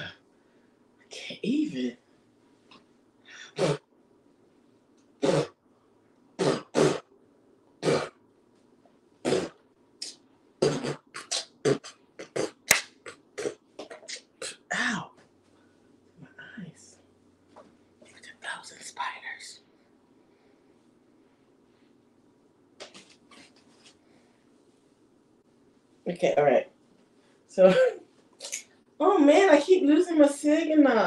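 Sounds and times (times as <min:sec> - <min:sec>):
breathy whispering: 0:18.1 - 0:19.7.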